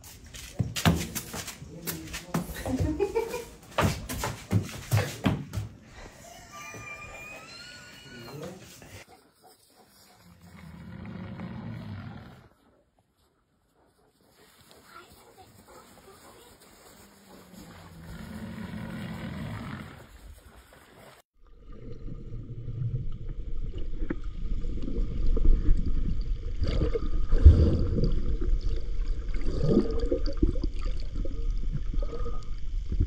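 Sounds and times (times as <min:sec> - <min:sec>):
underwater rushing and gurgling: 0:21.4 - 0:33.0.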